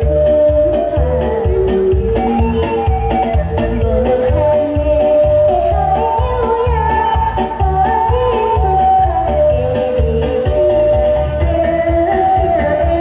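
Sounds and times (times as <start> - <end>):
backing music with steady beat: 0.0 - 13.0
girl singing into a microphone: 4.2 - 13.0.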